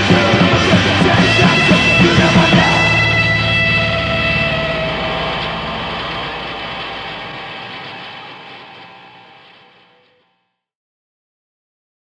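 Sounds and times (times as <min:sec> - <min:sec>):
distorted electric guitar chord: 0:00.0 - 0:10.3.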